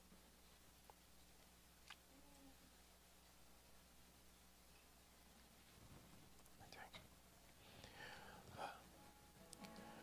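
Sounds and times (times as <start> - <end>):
faint whispered speech: 6.5 - 7.1, 8.4 - 8.9.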